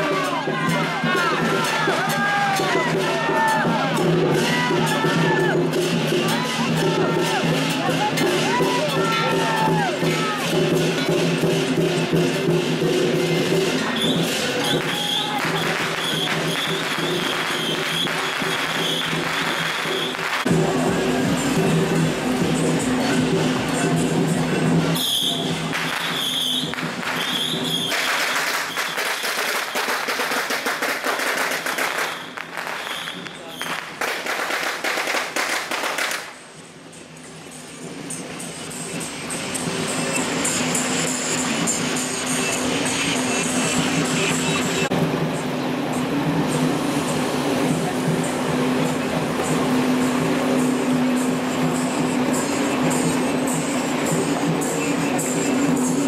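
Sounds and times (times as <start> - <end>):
firecrackers crackling: 0.0 - 56.0
firecracker-like popping crackle: 13.9 - 20.8, 25.0 - 36.5.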